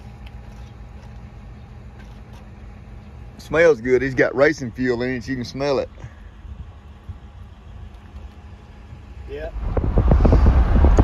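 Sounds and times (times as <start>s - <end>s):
car road noise: 0.0s - 11.0s
wind on microphone: 8.9s - 11.0s.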